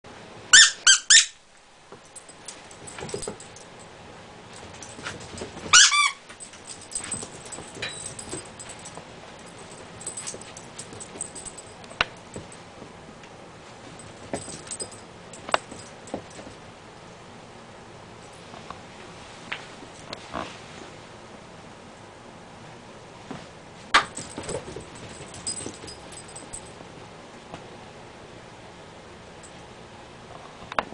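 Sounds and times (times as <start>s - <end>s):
squeaky dog toy squeaks: 0.5s - 1.4s, 5.7s - 6.2s
light metallic jingles: 2.0s - 3.8s, 4.5s - 12.6s, 13.8s - 16.6s, 24.0s - 26.8s.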